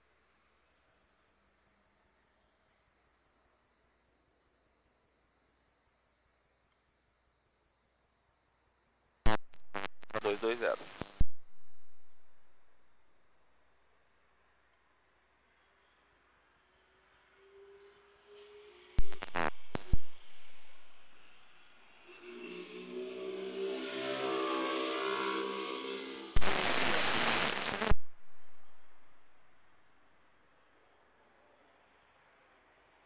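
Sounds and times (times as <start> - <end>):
radio static burst: 9.3 - 12.7, 19.0 - 22.0, 26.2 - 29.6
radio carrier humming tone: 9.3 - 13.0, 17.4 - 29.8.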